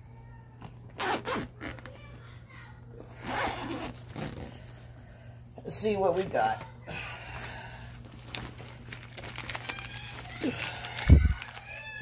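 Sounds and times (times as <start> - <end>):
backpack zipper pulled open: 1.0 - 1.9, 3.2 - 4.6.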